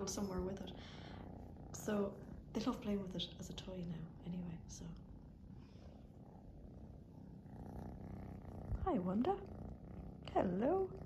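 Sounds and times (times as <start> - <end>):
kitten purring: 0.0 - 11.0.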